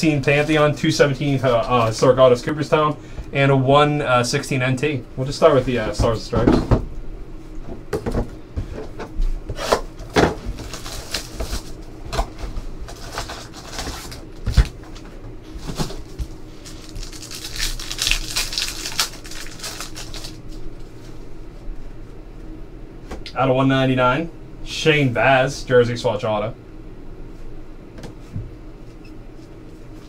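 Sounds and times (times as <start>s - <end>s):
plastic wrapping tearing: 10.5s - 11.8s, 12.9s - 14.8s, 15.8s - 20.7s.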